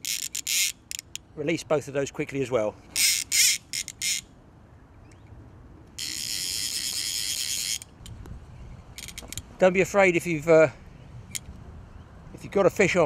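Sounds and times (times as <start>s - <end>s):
fishing reel ratchet buzzing: 0.0s - 1.2s, 3.0s - 4.2s, 6.0s - 7.9s, 9.0s - 9.4s.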